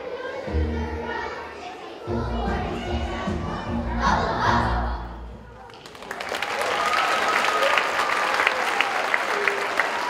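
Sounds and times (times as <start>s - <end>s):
children singing: 0.0s - 5.4s
musical accompaniment with bass: 2.1s - 5.5s.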